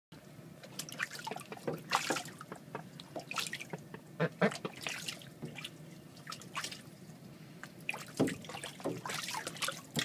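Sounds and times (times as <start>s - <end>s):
water splashing in a sink: 0.6s - 3.8s, 4.4s - 6.9s, 7.8s - 10.0s.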